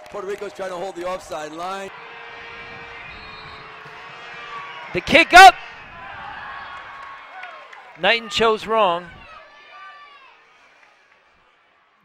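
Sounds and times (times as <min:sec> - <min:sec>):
stadium crowd murmur: 0:00.0 - 0:12.0
commentator speaking: 0:05.0 - 0:05.6, 0:08.0 - 0:09.1.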